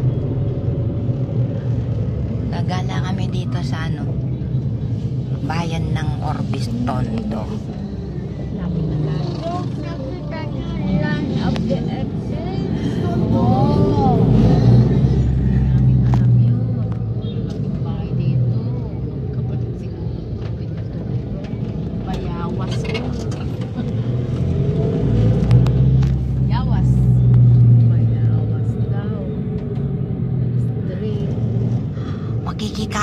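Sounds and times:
vehicle engine running: 0:00.0 - 0:33.0.

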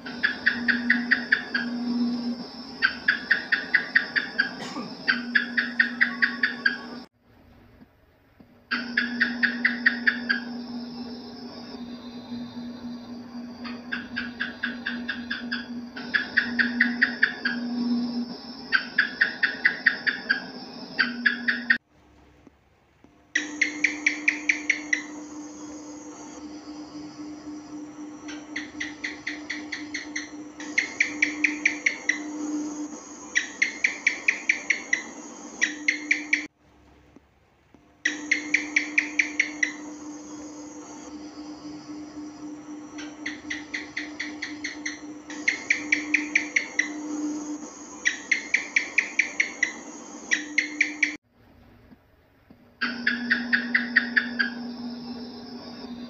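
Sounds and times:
gecko chirping: 0:00.0 - 0:07.1, 0:08.7 - 0:21.8, 0:23.3 - 0:36.5, 0:38.0 - 0:51.2, 0:52.8 - 0:56.0
steady low hum: 0:00.0 - 0:56.0.

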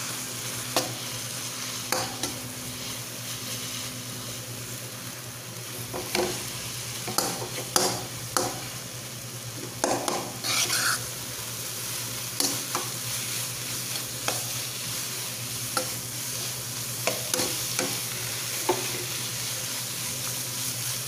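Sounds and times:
oil sizzling: 0:00.0 - 0:21.0
spatula scraping a pan: 0:10.4 - 0:11.0.

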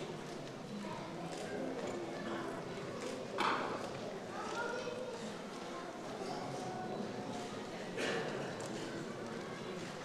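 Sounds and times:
faint voices murmuring: 0:00.0 - 0:10.0.

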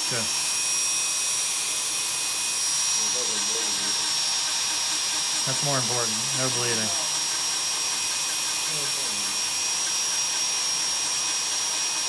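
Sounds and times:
nail drill high whine: 0:00.0 - 0:12.0.

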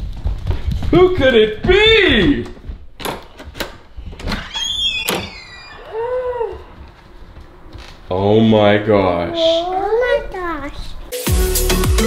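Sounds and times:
door lock clicks and knocks: 0:02.4 - 0:05.4
door squeak: 0:03.0 - 0:06.8.

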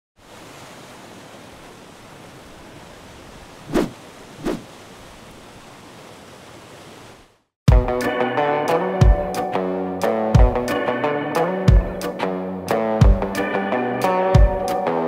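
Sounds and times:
loud guitar music: 0:07.7 - 0:15.0.

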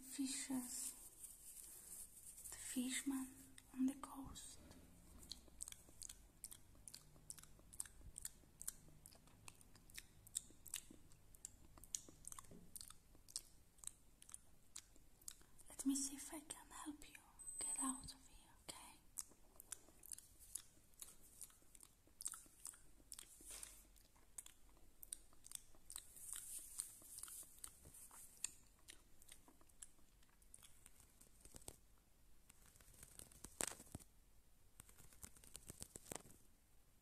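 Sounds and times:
small clicks and crackles: 0:25.4 - 0:34.1, 0:34.8 - 0:36.5.

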